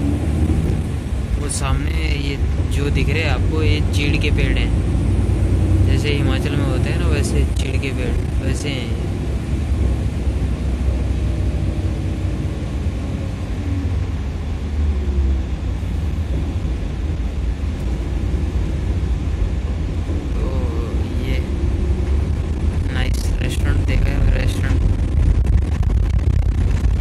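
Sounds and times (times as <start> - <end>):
bus engine and road rumble: 0.0 - 27.0.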